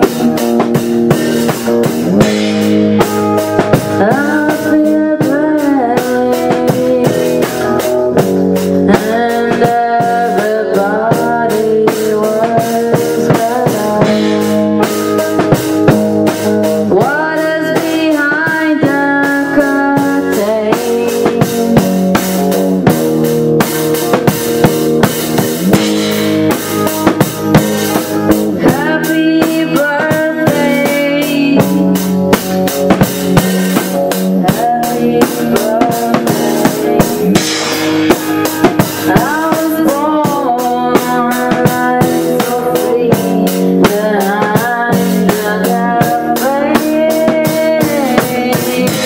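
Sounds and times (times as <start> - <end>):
rock band playing live: 0.0 - 49.0.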